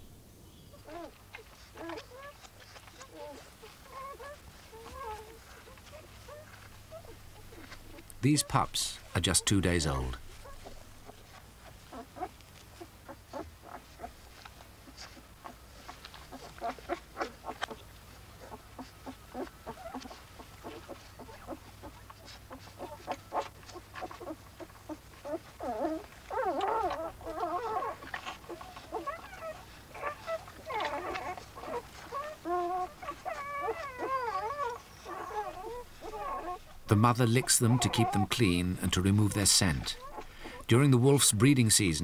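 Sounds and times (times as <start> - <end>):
wolf pups whimpering and squeaking: 0.0 - 42.0.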